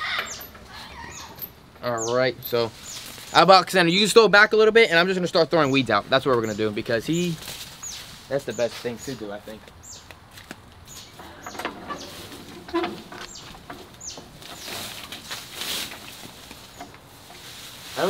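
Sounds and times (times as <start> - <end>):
high falling bird chirps: 0.0 - 3.4, 10.8 - 15.0
weeds rustling as pulled: 11.4 - 18.0.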